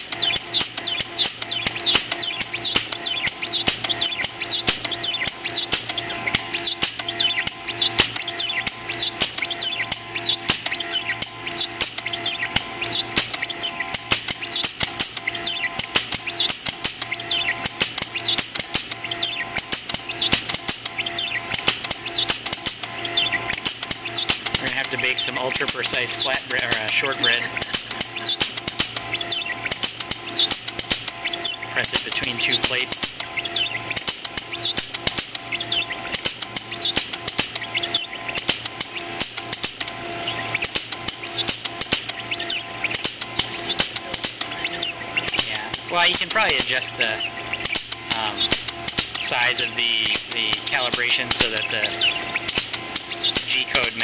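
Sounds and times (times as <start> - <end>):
rapid clicks: 0.0 - 54.0
stepper motors whining: 0.0 - 54.0.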